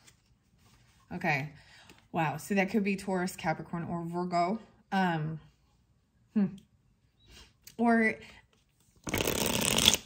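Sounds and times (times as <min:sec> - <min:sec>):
card deck riffle shuffle: 0:08.8 - 0:10.0.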